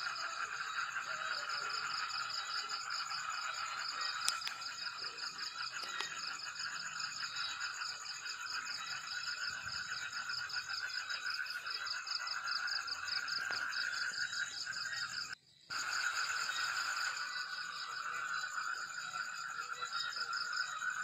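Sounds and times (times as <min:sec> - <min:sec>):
frogs calling: 0:00.0 - 0:21.0
insects trilling: 0:00.0 - 0:21.0.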